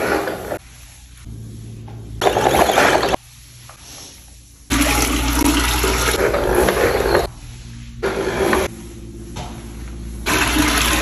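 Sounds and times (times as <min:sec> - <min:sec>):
water pouring into toilet bowl: 0:04.7 - 0:06.2, 0:10.3 - 0:11.0.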